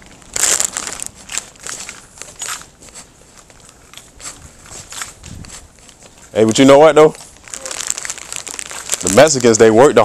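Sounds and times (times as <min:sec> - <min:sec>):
camera rubbing against clothing: 0:00.6 - 0:09.6.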